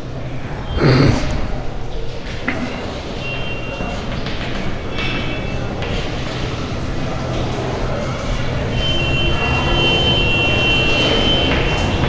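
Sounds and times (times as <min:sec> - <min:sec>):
chalk squeaks: 0:04.9 - 0:06.6.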